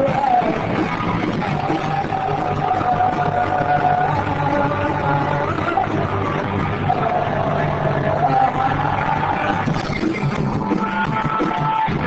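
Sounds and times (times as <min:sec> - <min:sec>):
bass line: 0:00.0 - 0:12.0
electric guitar: 0:00.0 - 0:12.0.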